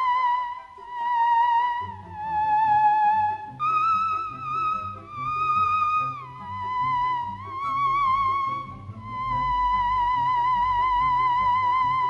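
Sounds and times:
theremin high held note: 0.0 - 12.0.

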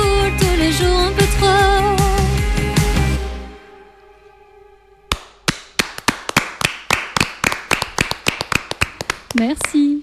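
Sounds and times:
hand clapping: 5.1 - 9.8.

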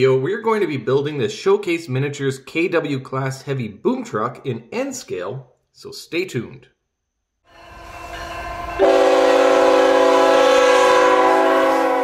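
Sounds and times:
locomotive air horn blast: 7.5 - 12.0
train rumble: 7.5 - 12.0.

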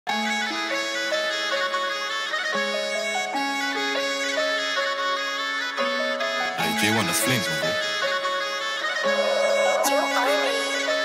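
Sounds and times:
folk wind instrument melody: 0.1 - 11.0.

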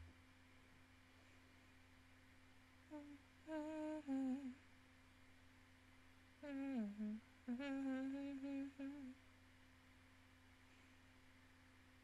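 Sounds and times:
woman humming: 2.9 - 4.6, 6.4 - 9.2.

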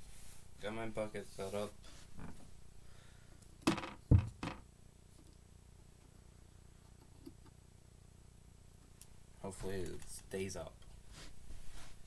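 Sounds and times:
plastic bucket knock: 3.7 - 4.6
faint rustling: 10.9 - 12.0.

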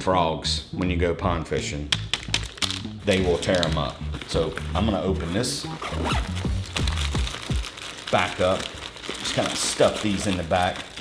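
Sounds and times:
background music: 1.6 - 7.7
plastic crinkling: 2.0 - 11.0.

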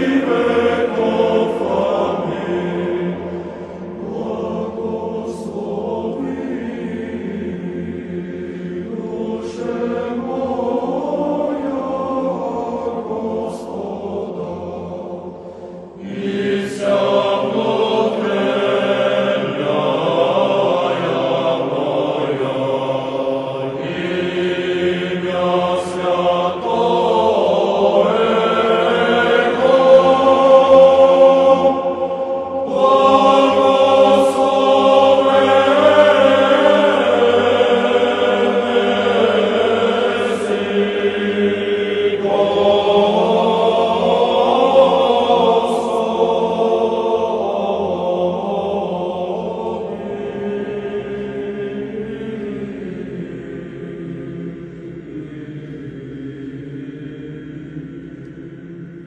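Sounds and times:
choir singing sustained notes: 0.0 - 59.0.

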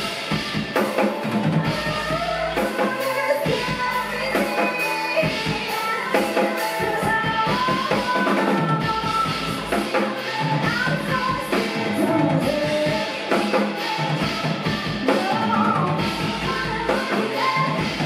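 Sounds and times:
bass drum and snare beat: 0.0 - 18.0
live rock band playing: 0.0 - 18.0.

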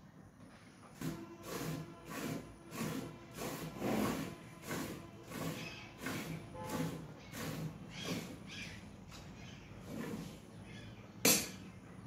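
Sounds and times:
milk squirting into metal bucket: 1.0 - 8.5.

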